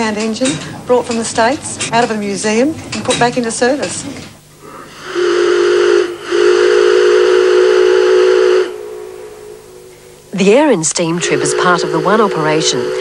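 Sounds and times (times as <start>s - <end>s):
steam hissing: 2.4s - 13.0s
steam whistle blowing: 4.6s - 10.3s, 10.9s - 13.0s.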